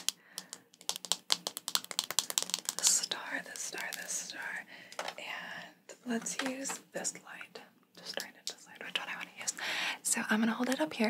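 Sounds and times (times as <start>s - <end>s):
fingernails clicking on plastic: 0.0s - 3.1s.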